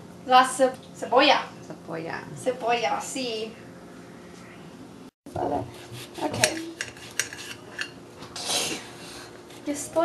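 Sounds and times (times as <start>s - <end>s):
knife slicing onion: 5.7s - 7.6s.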